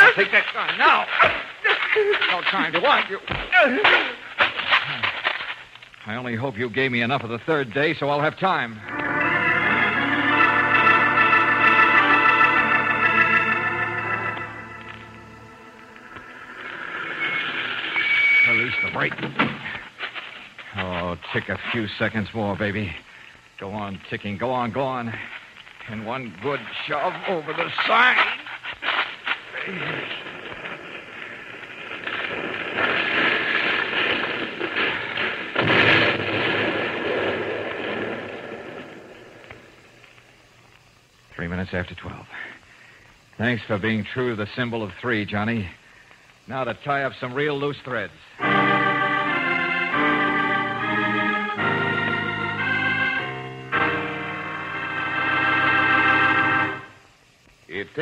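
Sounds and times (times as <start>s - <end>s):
organ chords: 8.6s - 19.9s, 48.4s - 57.0s
crash and rumble: 30.0s - 39.6s
loud explosion blast: 31.9s - 39.4s.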